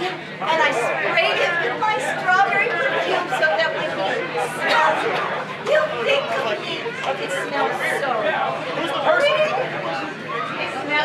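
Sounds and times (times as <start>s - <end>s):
overlapping people chatter: 0.0s - 11.0s.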